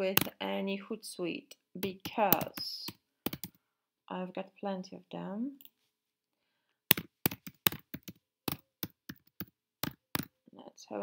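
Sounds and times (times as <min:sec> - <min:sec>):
keyboard typing: 0:01.8 - 0:03.6, 0:06.9 - 0:10.3.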